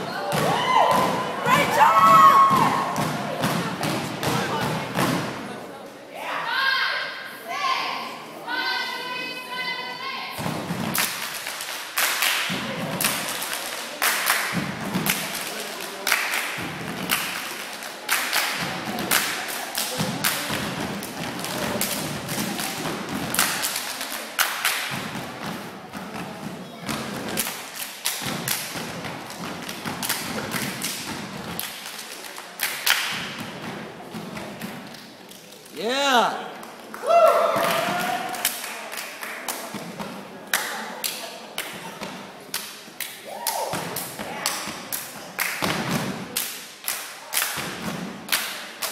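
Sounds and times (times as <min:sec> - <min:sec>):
hand claps and body slaps: 0:10.8 - 0:26.3, 0:26.9 - 0:33.4, 0:36.6 - 0:48.9.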